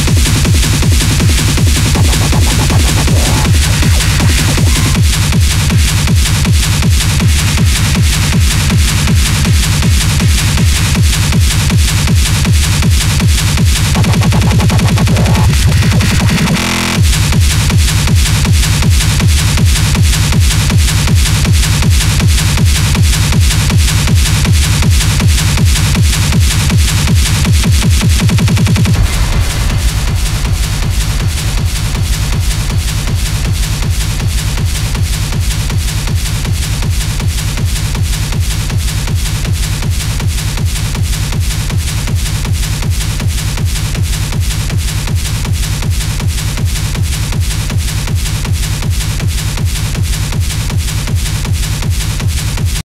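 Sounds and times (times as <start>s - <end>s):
driving kick drum: 0.0s - 52.8s
hard techno music: 0.0s - 52.8s.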